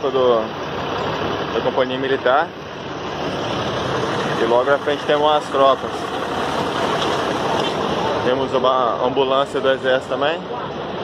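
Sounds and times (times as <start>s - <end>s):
heavy trucks driving past: 0.0s - 11.0s.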